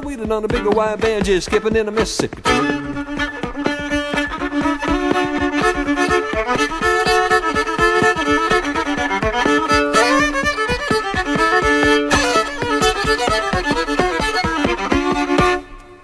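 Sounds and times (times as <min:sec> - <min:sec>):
fiddle melody: 0:00.0 - 0:16.0
picked string rhythm: 0:00.0 - 0:16.0.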